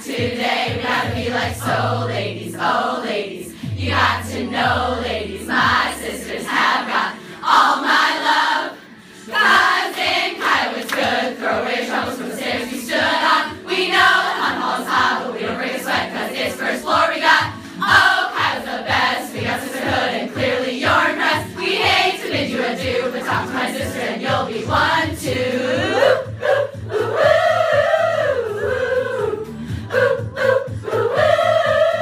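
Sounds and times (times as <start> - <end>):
women's choir singing: 0.0 - 32.0.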